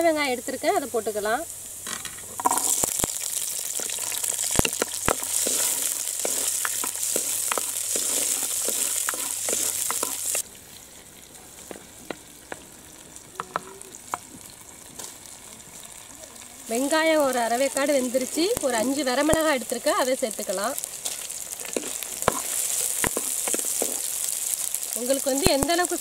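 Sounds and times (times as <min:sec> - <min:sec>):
shallots sizzling in hot oil: 0:00.0 - 0:26.0.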